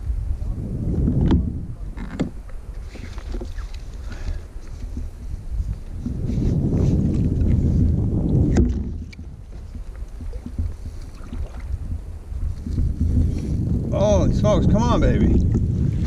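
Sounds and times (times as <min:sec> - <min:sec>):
wind rumbling on microphone: 0:00.0 - 0:16.0
water lapping at kayak hull: 0:01.9 - 0:06.4, 0:07.1 - 0:14.0, 0:14.7 - 0:16.0.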